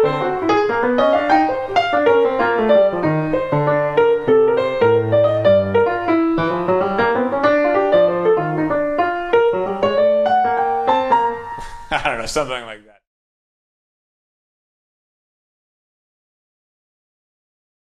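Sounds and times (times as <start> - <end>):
jazz piano playing: 0.0 - 12.6.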